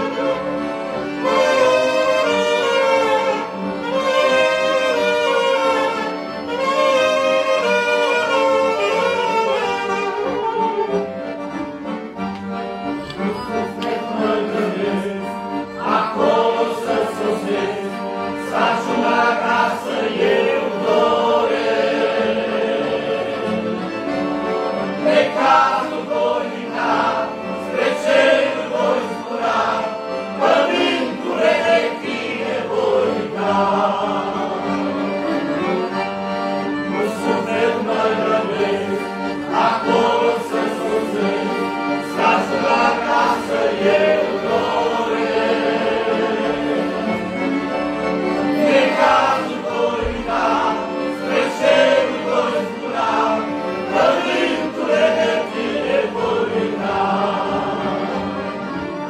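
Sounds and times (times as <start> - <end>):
men's choir singing a hymn: 0.0 - 12.0, 13.1 - 59.0
accordion chords: 0.0 - 59.0.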